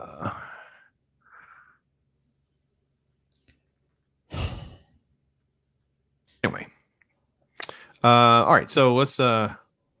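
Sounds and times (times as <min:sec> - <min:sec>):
person sighing: 0:00.0 - 0:01.7, 0:04.3 - 0:04.8.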